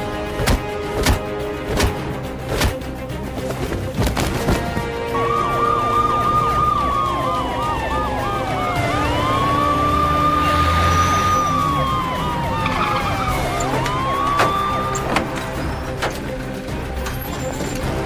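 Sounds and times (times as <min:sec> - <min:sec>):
police siren wail: 0:04.8 - 0:16.0
police siren yelp: 0:05.1 - 0:15.6.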